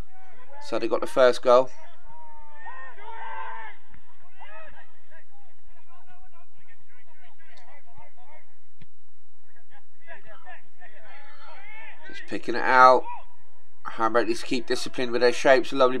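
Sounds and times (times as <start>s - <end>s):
distant players shouting: 0.0s - 8.7s, 9.4s - 16.0s.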